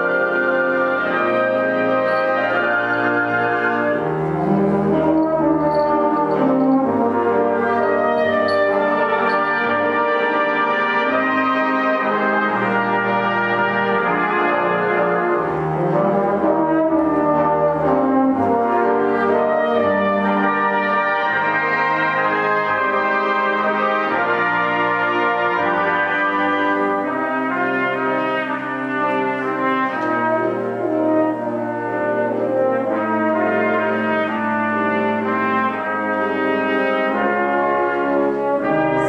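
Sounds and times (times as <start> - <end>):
concert wind band playing: 0.0 - 39.0.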